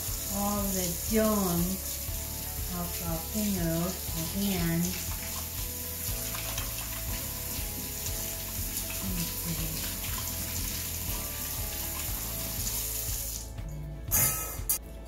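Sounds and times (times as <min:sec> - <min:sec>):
faucet running into steel sink: 0:00.0 - 0:13.6.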